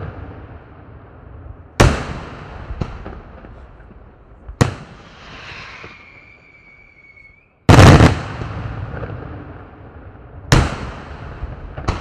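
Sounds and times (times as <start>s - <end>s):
fireworks bangs with echo: 0.0s - 12.0s
high whistle: 5.1s - 7.7s.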